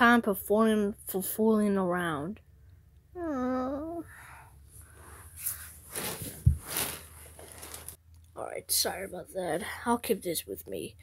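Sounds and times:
toys rustling on carpet: 0:05.4 - 0:08.0.

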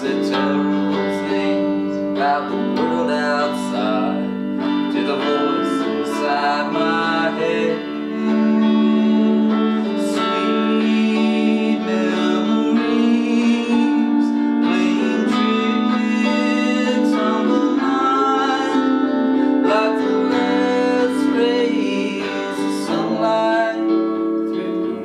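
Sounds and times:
pedal steel guitar sliding notes: 0:00.0 - 0:25.0
picked electric guitar notes: 0:00.0 - 0:25.0.

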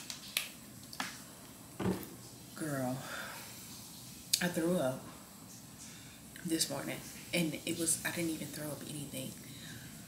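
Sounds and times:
bottle knocking on a table: 0:01.8 - 0:02.3.

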